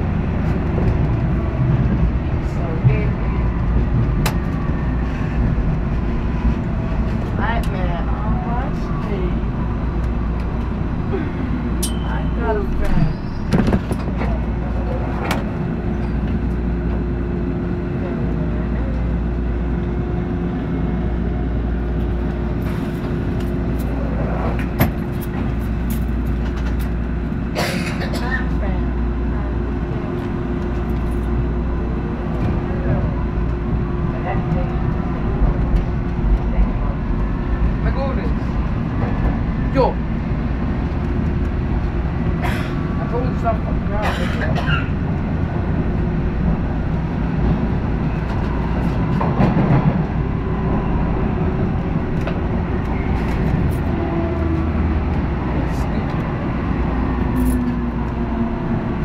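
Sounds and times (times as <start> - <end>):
subway train rumble: 0.0 - 59.0.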